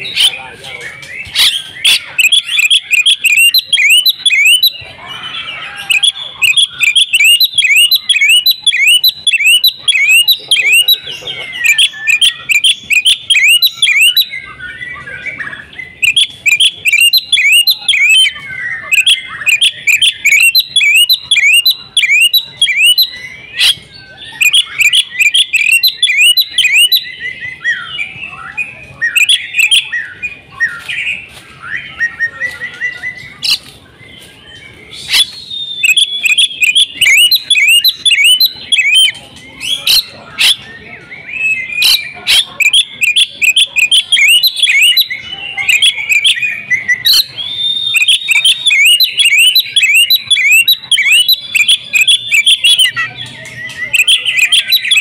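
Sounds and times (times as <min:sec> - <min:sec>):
bird singing sharp chirps: 0:00.0 - 0:55.0.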